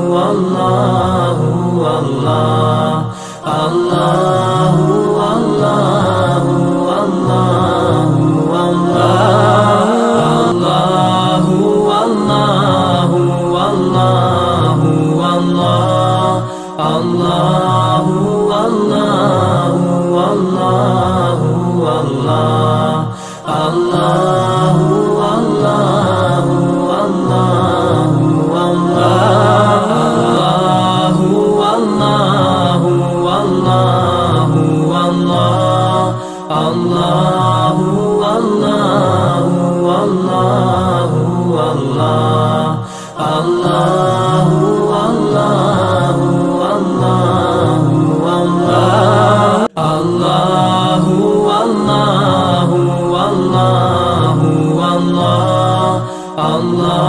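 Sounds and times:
chant in long sung notes: 0.0 - 57.0.

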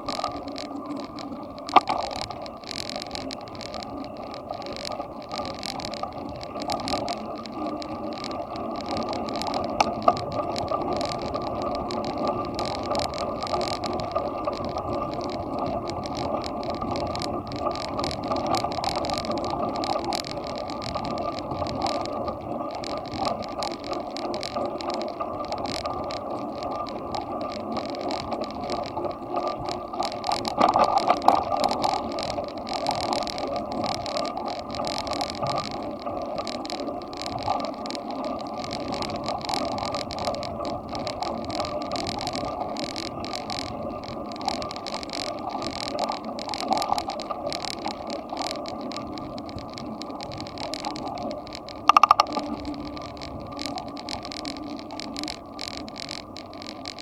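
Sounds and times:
bicycle tyre and ride noise: 0.0 - 57.0
fast rattling clicks: 0.0 - 57.0.

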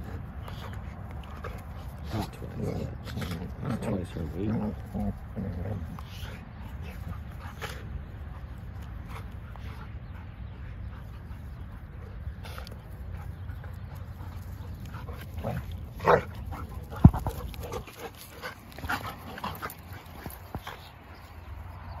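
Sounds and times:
dogs vocalizing while play-fighting: 0.0 - 22.0.

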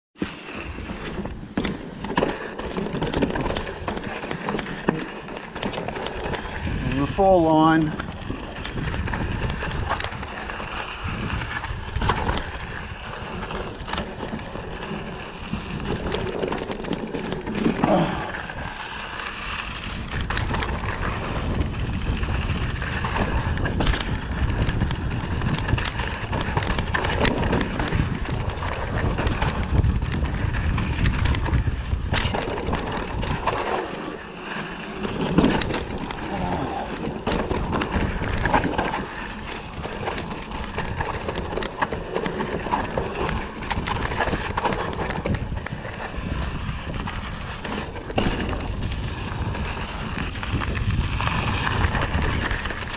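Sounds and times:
bike rattling over bumps: 0.2 - 52.9
bike tyres rolling on dirt: 0.2 - 52.9
wind buffeting microphone: 6.1 - 18.9, 19.5 - 33.9, 35.0 - 52.9.

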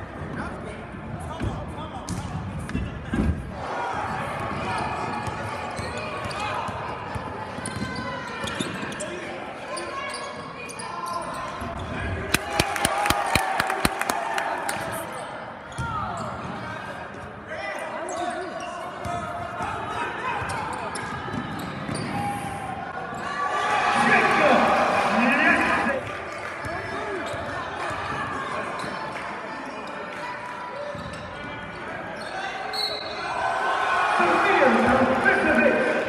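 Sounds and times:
crowd and player voices: 0.0 - 36.0.

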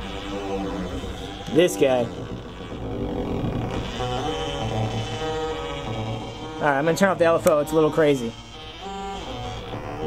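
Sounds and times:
low synth drone: 0.0 - 10.0
synth step sequencer loop: 0.0 - 10.0.

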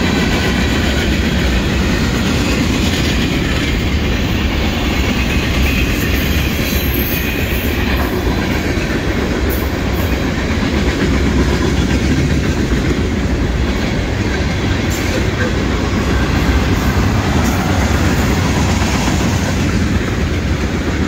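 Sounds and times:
freight train wheels rumbling on rails: 0.0 - 21.0.

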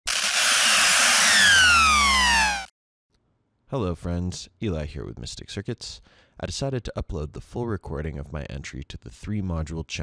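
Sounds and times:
tones gliding downward: 0.5 - 2.7.

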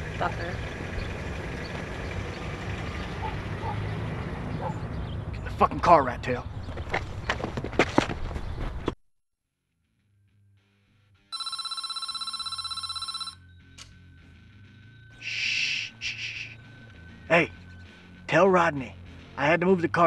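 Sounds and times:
telephone ringing: 11.3 - 13.5.

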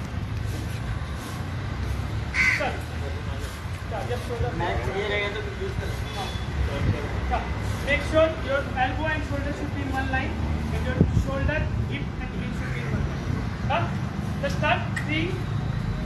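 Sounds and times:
short harsh call: 2.3 - 2.7.

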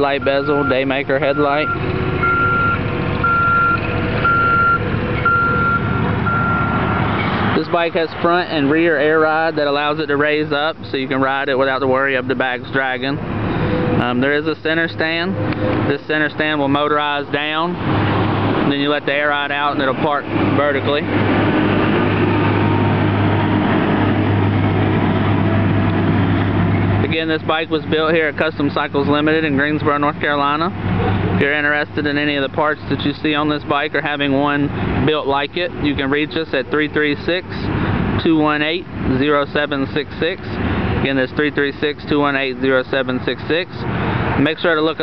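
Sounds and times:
electronic beep: 1.4 - 6.8.

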